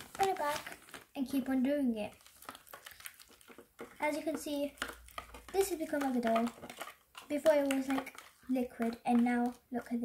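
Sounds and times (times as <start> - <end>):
plastic spoon stirring paste: 0.0 - 10.0
spoon scraping plastic tray: 2.7 - 10.0.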